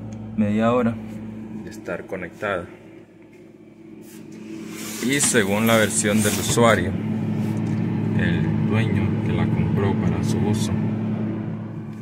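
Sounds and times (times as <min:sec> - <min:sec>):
refrigerator compressor hum: 0:00.0 - 0:12.0.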